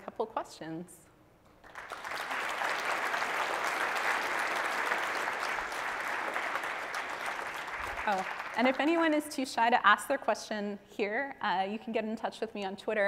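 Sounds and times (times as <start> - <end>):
audience applauding: 1.6 - 9.0.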